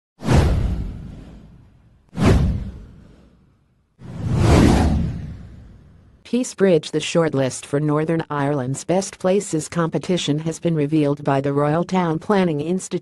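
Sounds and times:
whoosh sound effects: 0:00.2 - 0:06.1.

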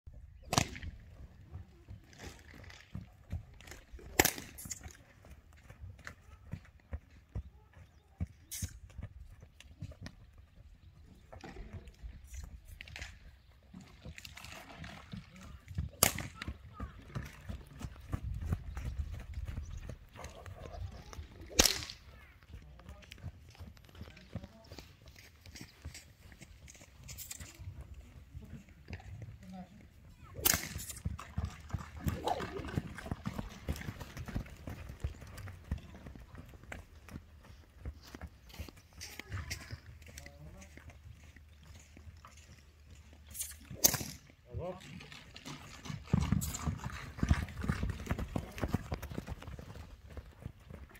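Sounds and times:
hooves on sand: 0:00.9 - 0:44.5, 0:45.4 - 0:50.9
loud sharp crack: 0:21.6 - 0:22.0.

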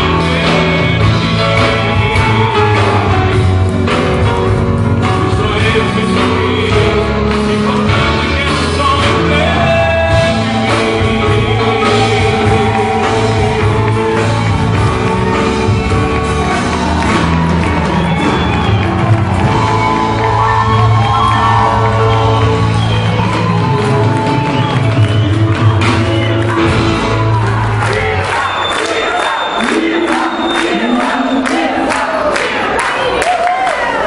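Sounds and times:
person singing: 0:00.0 - 0:33.6
crowd cheering and singing along: 0:00.0 - 0:34.0
crowd clapping: 0:00.0 - 0:34.0
live band with bass: 0:00.0 - 0:34.0.

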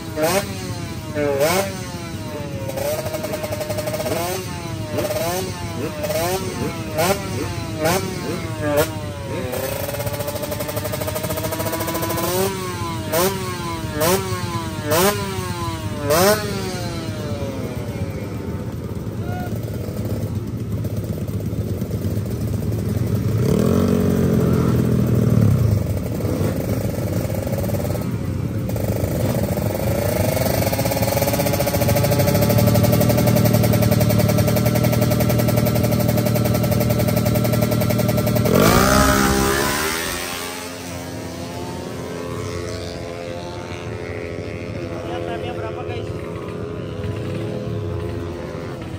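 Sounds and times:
motorcycle engine revving: 0:00.0 - 0:48.9
motorcycle engines at high revs: 0:00.0 - 0:48.9
motorcycle launching: 0:28.1 - 0:42.6.

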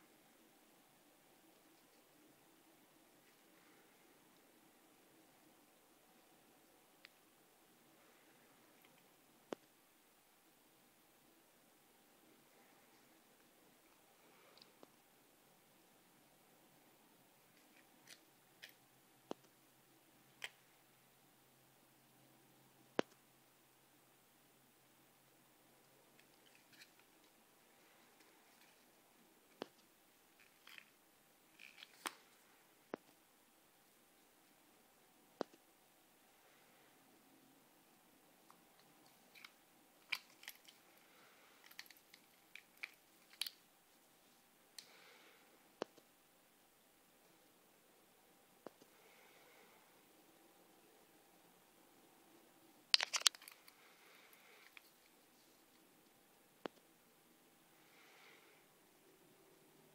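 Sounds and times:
watch handling rustles: 0:26.2 - 0:27.4, 0:30.4 - 0:32.4, 0:38.8 - 0:43.6, 0:52.9 - 0:53.8.

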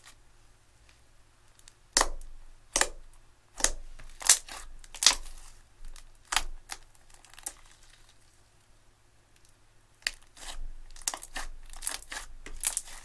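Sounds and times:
slime squished by hand: 0:03.6 - 0:08.1, 0:10.0 - 0:13.0.

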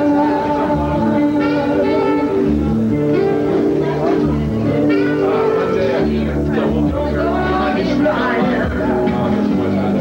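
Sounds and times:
pop-rock song with lead vocal: 0:00.0 - 0:03.7, 0:04.7 - 0:10.0.

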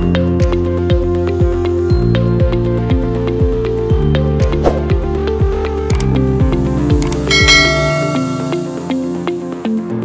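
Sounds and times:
electronic music with kick-drum beat: 0:00.0 - 0:09.2
sharp clicks: 0:05.9 - 0:06.2, 0:06.9 - 0:07.3
bright bell chime: 0:07.3 - 0:09.0.

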